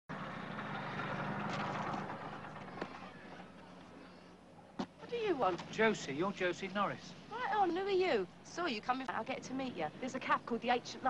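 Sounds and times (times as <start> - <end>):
moped engine running: 0.1 - 3.8.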